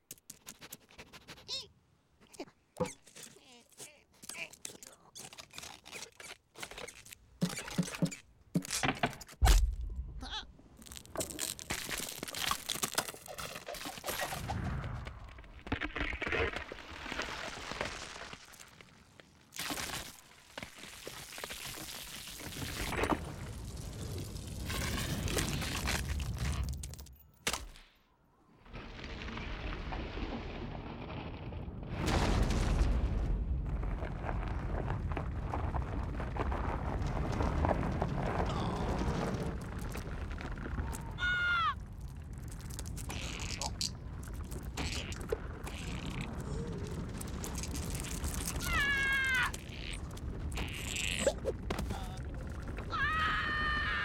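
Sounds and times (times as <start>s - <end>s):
cartoon squirrel squeak: 1.4s - 1.7s
ice cracking: 10.7s - 14.4s, 15.2s - 27.1s, 33.7s - 54.0s.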